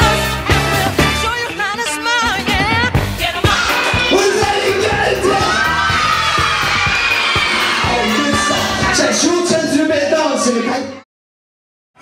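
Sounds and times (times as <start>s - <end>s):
music with a beat: 0.0s - 9.2s
children shouting and cheering: 3.4s - 11.0s.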